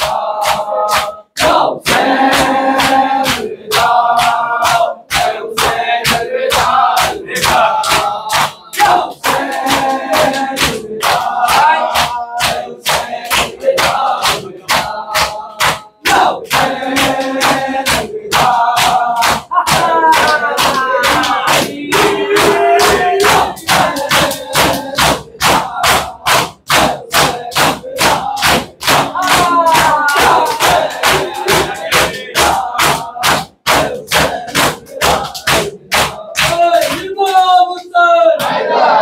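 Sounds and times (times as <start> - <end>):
hands slapping chests: 0.0 - 37.5
men chanting: 0.0 - 39.0.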